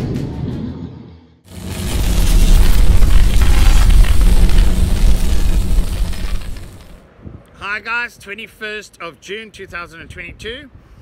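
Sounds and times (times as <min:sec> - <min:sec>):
deep rumble: 0:01.5 - 0:07.0.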